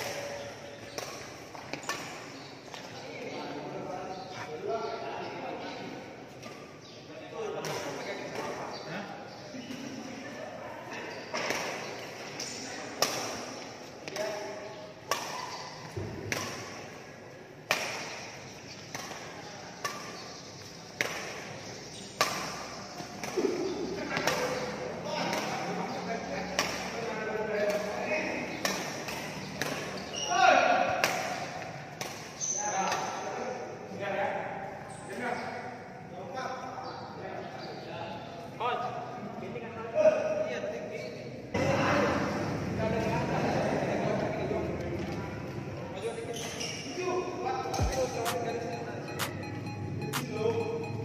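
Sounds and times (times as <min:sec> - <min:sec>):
rackets hitting shuttlecock: 0:00.0 - 0:03.0, 0:11.3 - 0:33.2, 0:47.7 - 0:50.8.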